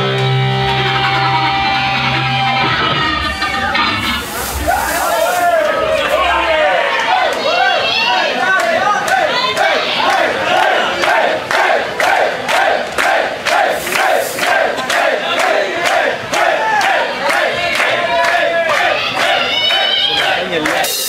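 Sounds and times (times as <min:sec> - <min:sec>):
crowd chanting: 0:03.5 - 0:21.0
rhythmic hand clapping: 0:08.4 - 0:21.0.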